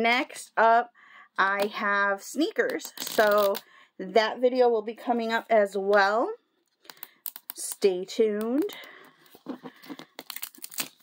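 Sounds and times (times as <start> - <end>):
wrapper being torn off by hand: 10.2 - 11.0.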